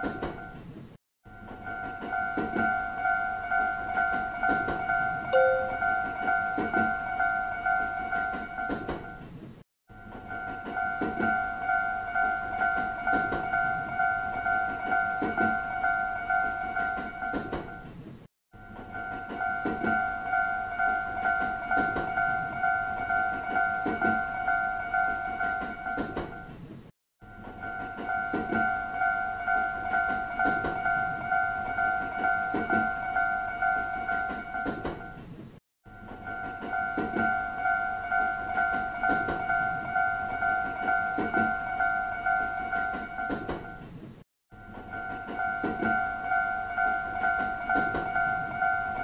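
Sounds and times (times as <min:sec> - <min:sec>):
railroad crossing bell ringing: 0:01.6 - 0:08.9, 0:10.3 - 0:17.4, 0:18.7 - 0:26.0, 0:27.5 - 0:34.8, 0:36.1 - 0:43.5, 0:44.6 - 0:49.0
train wheels clacking on rail joints: 0:21.3 - 0:22.4, 0:30.0 - 0:31.2, 0:33.8 - 0:35.2, 0:38.5 - 0:39.9, 0:40.6 - 0:41.6, 0:42.4 - 0:43.9, 0:46.9 - 0:48.6.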